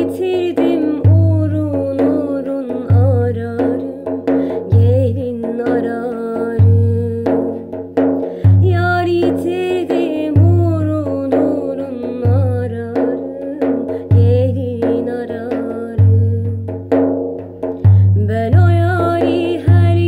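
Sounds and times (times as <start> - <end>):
woman singing ornamented melody: 0.0 - 4.1, 4.7 - 7.6, 8.6 - 16.7, 18.2 - 20.0
frame drum played by hand: 0.0 - 20.0.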